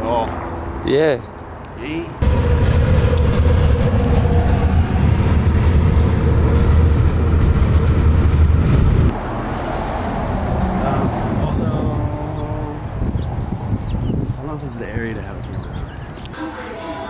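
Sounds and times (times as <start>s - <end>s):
light traffic noise: 0.0s - 4.8s, 8.2s - 17.0s
car road noise rumble: 2.2s - 14.4s.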